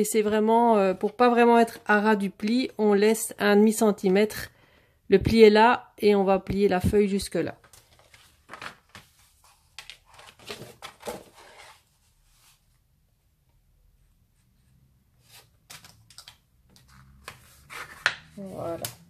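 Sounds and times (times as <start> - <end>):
card paper rustling and creasing: 7.6 - 12.6.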